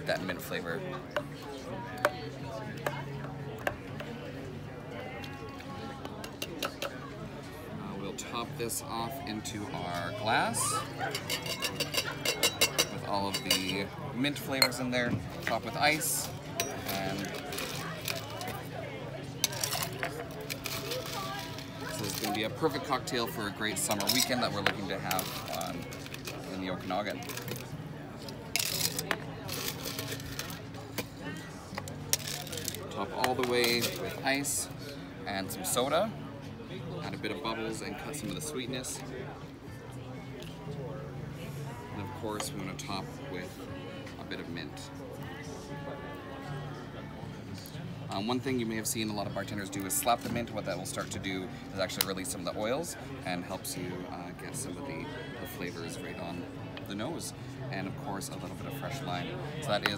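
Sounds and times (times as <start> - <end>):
voices chattering: 0.0 - 49.9.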